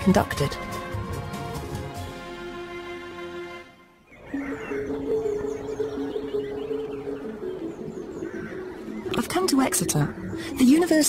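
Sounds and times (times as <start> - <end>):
faint bird chirps: 4.0 - 11.0.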